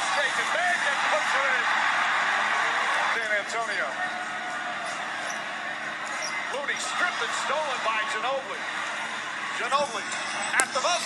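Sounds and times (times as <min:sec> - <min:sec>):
arena crowd cheering: 0:00.0 - 0:11.0.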